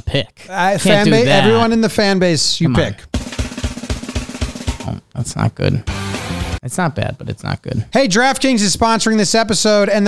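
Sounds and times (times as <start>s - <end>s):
snare and bass drum roll: 3.1s - 5.0s.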